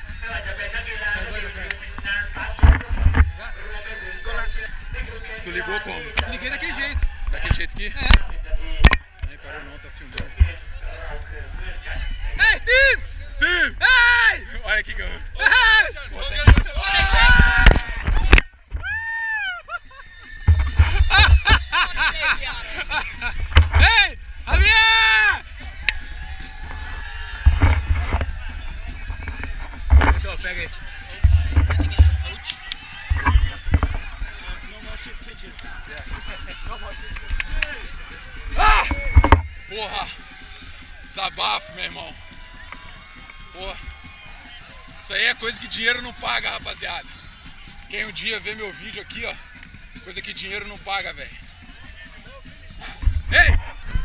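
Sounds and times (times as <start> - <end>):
men talking and calling out: 0.0 - 54.0
players shouting: 11.9 - 54.0.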